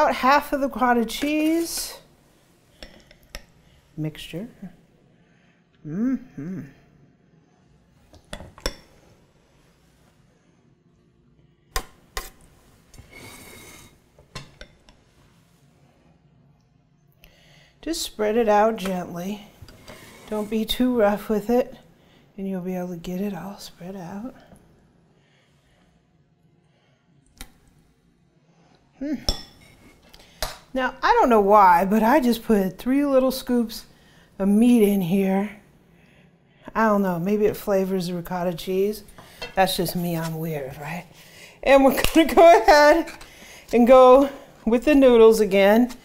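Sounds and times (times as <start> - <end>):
spoon scraping: 0.7 - 2.1.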